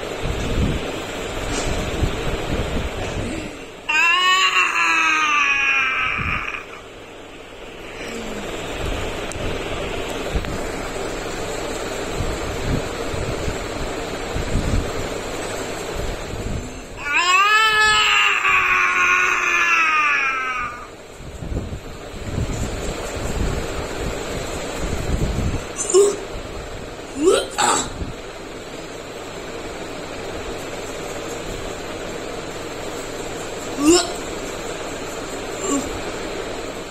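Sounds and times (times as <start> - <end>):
steady noise: 0.0 - 36.9
boy wailing: 3.2 - 6.9, 16.9 - 21.0, 27.2 - 28.0, 33.8 - 34.2, 35.6 - 36.0.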